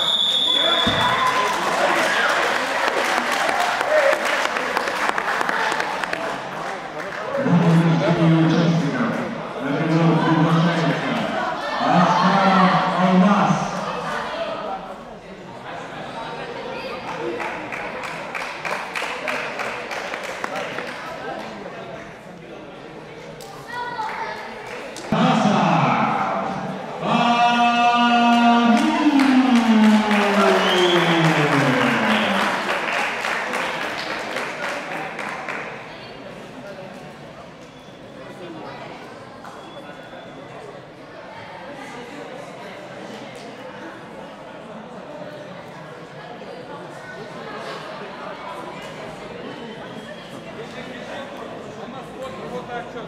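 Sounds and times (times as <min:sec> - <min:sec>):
audience clapping: 0:01.0 - 0:07.3, 0:17.1 - 0:21.6, 0:28.7 - 0:35.7.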